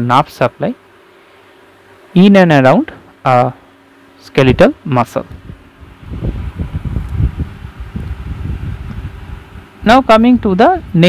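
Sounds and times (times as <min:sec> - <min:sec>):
microphone handling rumble: 0:04.4 - 0:11.0.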